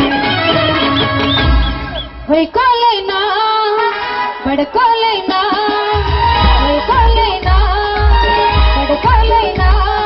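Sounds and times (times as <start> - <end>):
instrumental accompaniment: 0.0 - 2.9, 3.5 - 10.0
woman singing through pa: 2.3 - 10.0
heavy bass drum beat: 6.0 - 10.0.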